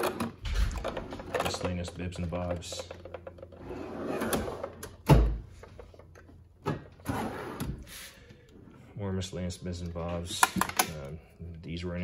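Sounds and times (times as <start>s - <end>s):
steel drawers sliding: 3.6s - 5.0s, 6.8s - 8.0s.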